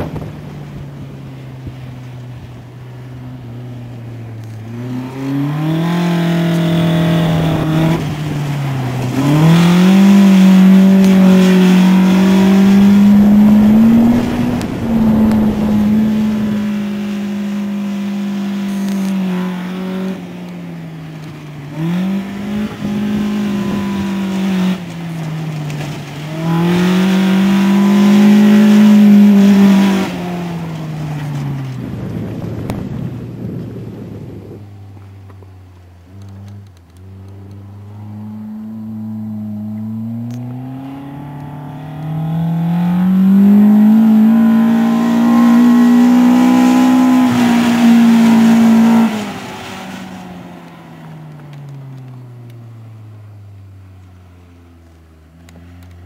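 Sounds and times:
car engine revving hard: 0:04.7 - 0:20.2, 0:21.7 - 0:24.9, 0:26.2 - 0:30.6, 0:37.5 - 0:49.7.

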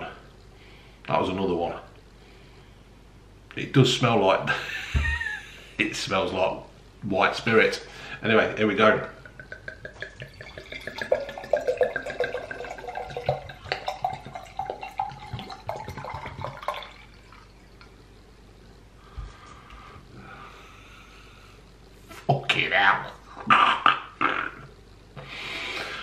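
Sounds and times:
liquid pouring into a glass: 0:09.2 - 0:18.0.

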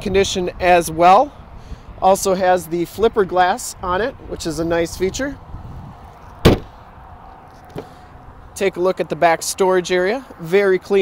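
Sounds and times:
car hatch latch clunk: 0:06.4 - 0:06.8.

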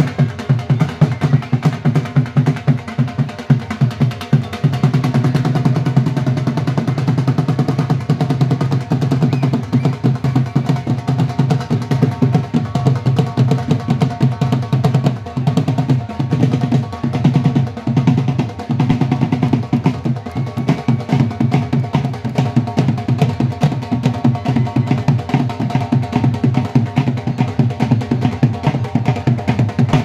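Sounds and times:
dhol drums beaten with sticks: 0:00.0 - 0:30.0.

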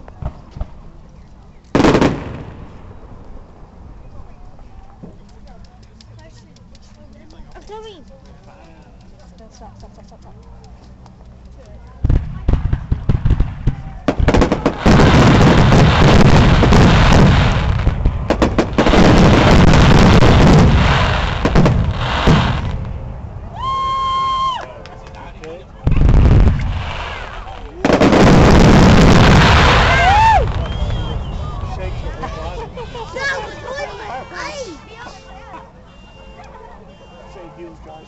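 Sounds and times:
fireworks bangs and crackling: 0:00.0 - 0:00.8, 0:01.7 - 0:03.4, 0:12.0 - 0:23.3, 0:25.8 - 0:32.9.

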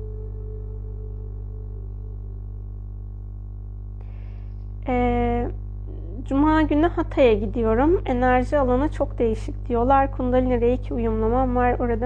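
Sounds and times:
higher wavering ringing tone: 0:00.0 - 0:03.9
low drone of held tones: 0:00.0 - 0:09.0.

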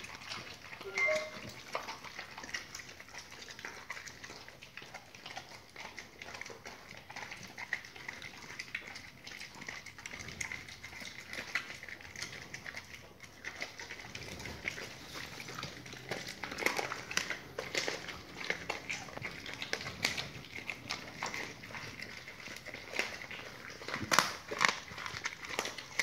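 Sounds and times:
dogs chewing and crunching: 0:00.0 - 0:26.0.

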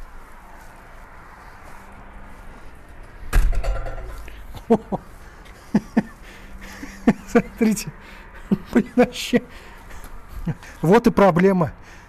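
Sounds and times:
loud thud: 0:03.3 - 0:04.2.

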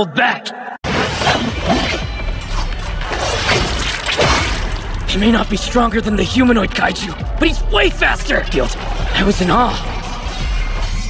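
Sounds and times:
dramatic music with deep bass: 0:00.8 - 0:11.0
crashing hits: 0:03.0 - 0:05.2.

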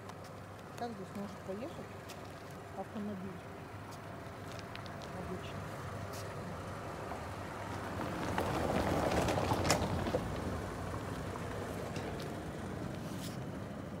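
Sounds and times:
motor vehicle running: 0:00.0 - 0:14.0.

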